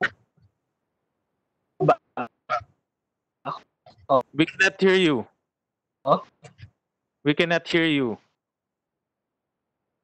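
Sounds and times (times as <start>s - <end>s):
garbled voice breaking up: 3.5s - 5.0s, 6.0s - 6.7s.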